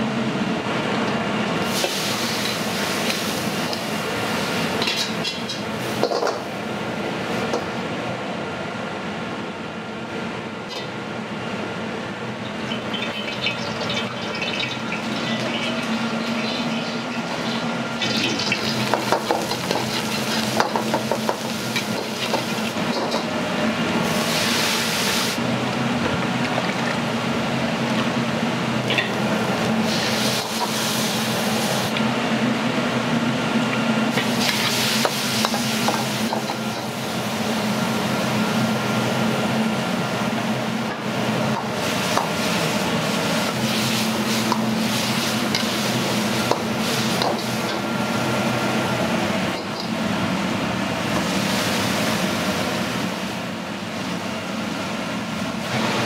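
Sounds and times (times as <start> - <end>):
gas burner running: 0.0 - 56.0
oil sizzling in a wok: 1.6 - 7.5, 12.4 - 25.5, 26.5 - 32.0, 33.8 - 56.0.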